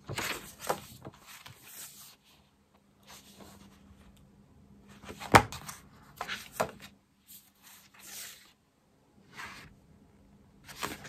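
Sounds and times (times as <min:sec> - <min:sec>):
paper rustling: 0:00.0 - 0:03.8, 0:10.6 - 0:11.0.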